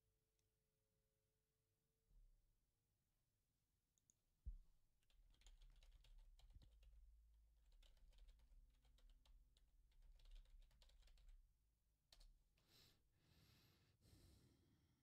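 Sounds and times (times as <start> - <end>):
typing on computer keyboard: 5.0 - 12.5.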